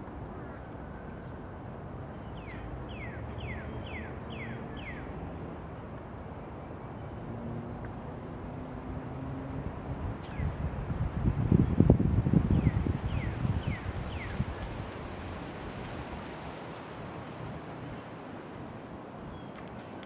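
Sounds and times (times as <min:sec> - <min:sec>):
wind buffeting microphone: 0:08.8 - 0:20.0.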